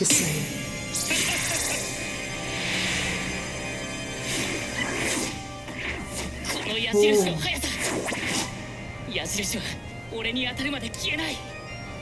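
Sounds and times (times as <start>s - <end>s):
soundtrack music: 0.0s - 9.0s
voice: 6.6s - 7.8s.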